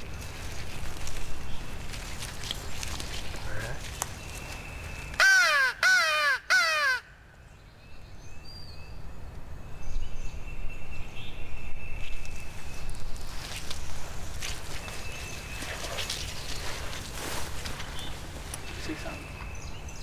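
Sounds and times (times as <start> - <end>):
mouth-blown crow call: 5.2 - 7.2.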